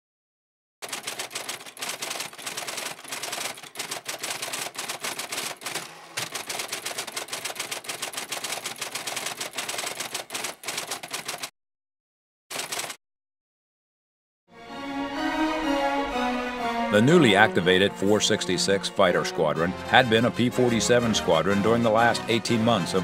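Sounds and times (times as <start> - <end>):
typewriter typing rapidly: 0.8 - 11.5, 12.5 - 13.0.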